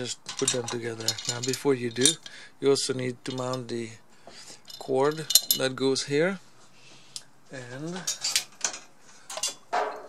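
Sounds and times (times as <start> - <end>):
metal parts clinking on a workbench: 0.0 - 2.4, 3.2 - 3.7, 4.6 - 5.8, 7.9 - 10.0.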